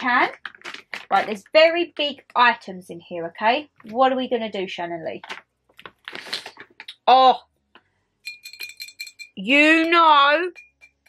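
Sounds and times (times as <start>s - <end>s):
items clicking and knocking: 0.0s - 1.4s, 5.1s - 7.0s
plastic bag rustling: 0.1s - 1.4s.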